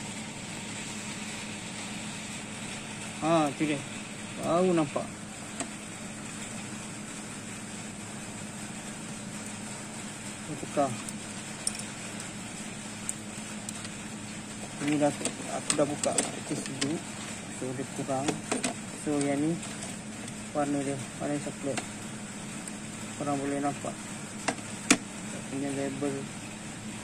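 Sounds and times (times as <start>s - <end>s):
refrigerator humming: 0.0s - 27.0s.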